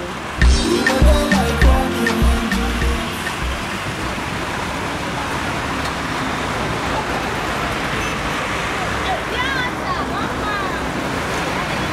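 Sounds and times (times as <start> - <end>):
road traffic noise: 0.0 - 11.9.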